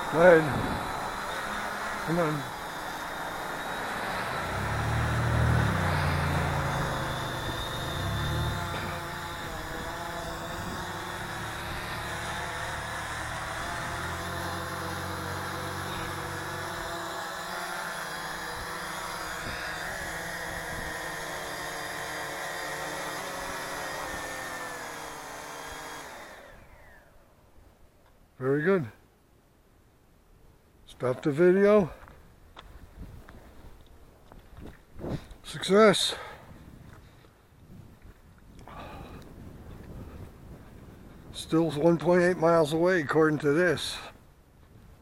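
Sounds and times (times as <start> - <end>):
drone propellers whining: 0.0 - 27.3.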